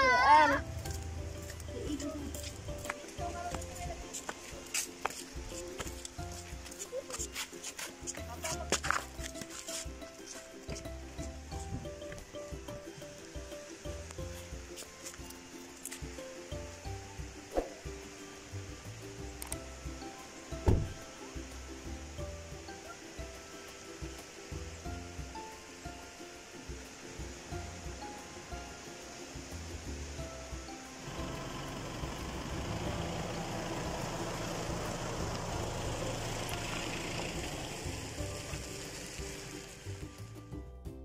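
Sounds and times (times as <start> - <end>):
melody of short steady notes: 0.0 - 41.0
hissing wash: 28.2 - 40.0.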